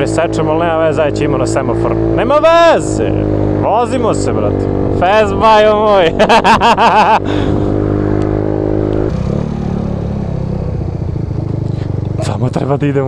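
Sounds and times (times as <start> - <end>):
scooter engine running: 3.2 - 13.0.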